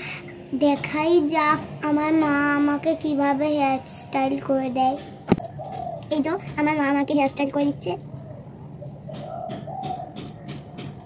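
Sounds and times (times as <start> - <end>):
pigeon cooing: 5.3 - 6.6, 8.0 - 11.0.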